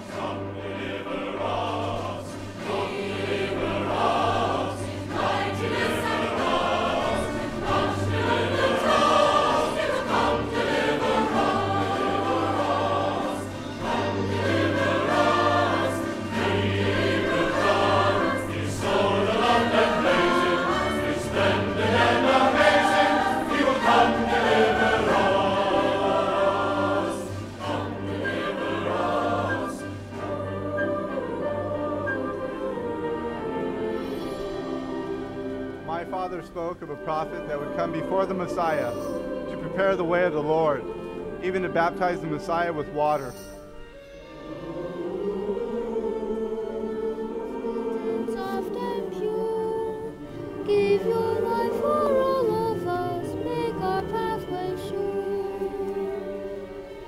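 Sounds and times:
large choir singing: 0.0 - 57.0
musical accompaniment: 0.0 - 57.0.

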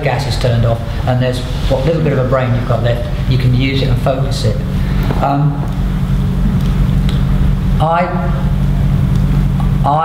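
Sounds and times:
man speaking: 0.0 - 5.8, 7.8 - 8.6
low background rumble: 0.0 - 10.0.

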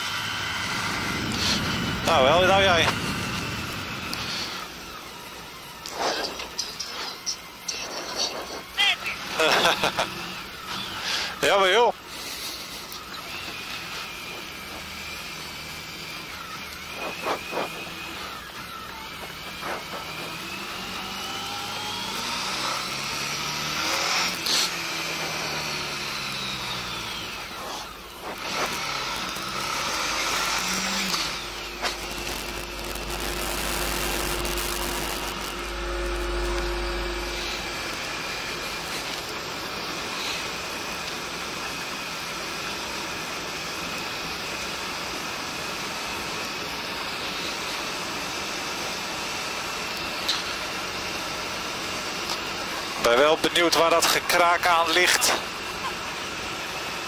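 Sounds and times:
motorcycle engine accelerating: 0.0 - 7.7, 12.4 - 53.3
wind rushing over microphone: 0.4 - 4.8.

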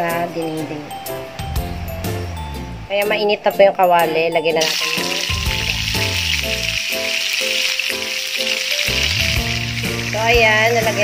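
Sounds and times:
background music: 0.0 - 11.0
fish frying in oil: 4.6 - 11.0.

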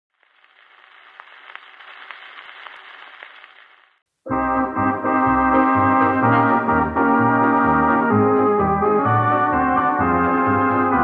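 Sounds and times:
record surface hiss: 0.1 - 4.3.

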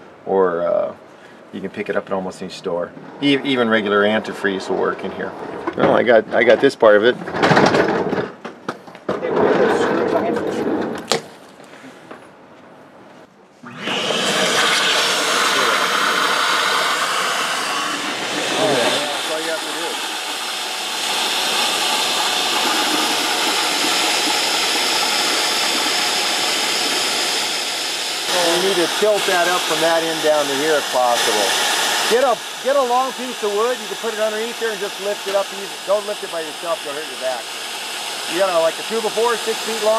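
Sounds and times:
shop vacuum running: 13.6 - 39.9.

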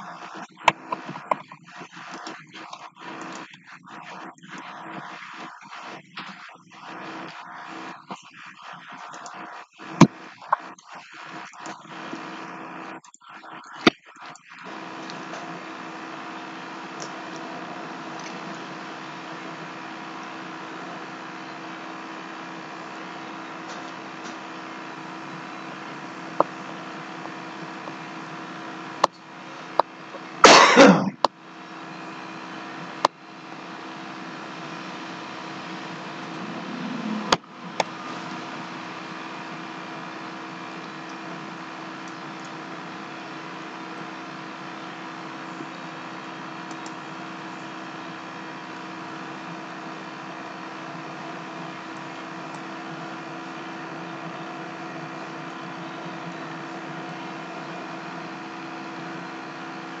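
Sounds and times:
faint steady tones: 0.0 - 30.5, 31.2 - 60.0
background hum: 0.0 - 60.0
loud noisy burst: 30.3 - 31.3, 34.8 - 40.8.

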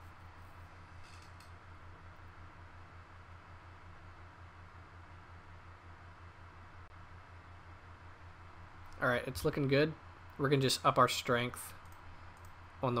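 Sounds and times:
faint low hum with hiss: 0.0 - 13.0.

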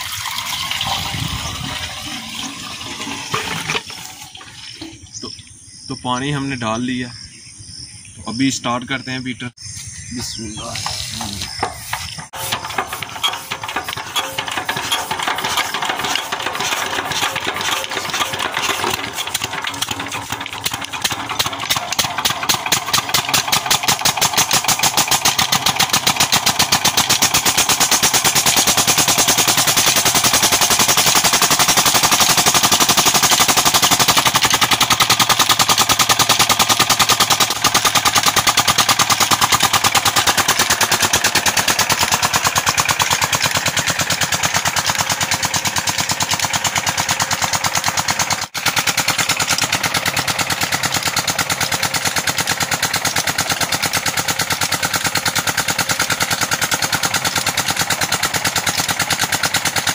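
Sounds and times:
diesel engine running: 10.2 - 59.9.

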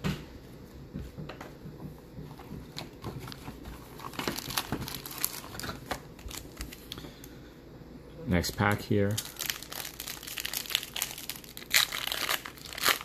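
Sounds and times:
wrapper crinkling: 3.3 - 7.0, 8.4 - 13.0.

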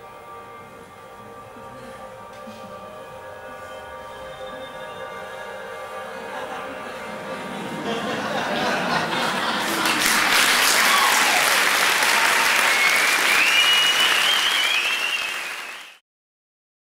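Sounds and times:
high wavering tone: 0.0 - 8.2
audience applauding: 7.8 - 16.0.

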